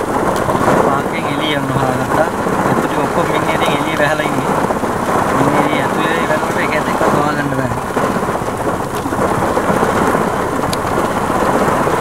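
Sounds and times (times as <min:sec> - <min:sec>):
steady rain pattering: 0:00.0 - 0:12.0.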